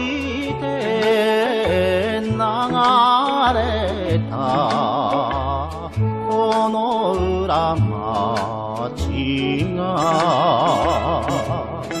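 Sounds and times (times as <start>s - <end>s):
sustained bass notes: 0.0s - 12.0s
vibrato vocal melody: 0.0s - 12.0s.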